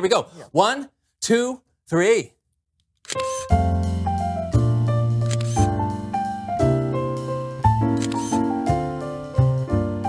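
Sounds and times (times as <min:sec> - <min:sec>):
camera shutter click: 0:03.0 - 0:03.5, 0:05.2 - 0:05.7, 0:08.0 - 0:08.4
background music with bass: 0:03.5 - 0:10.0.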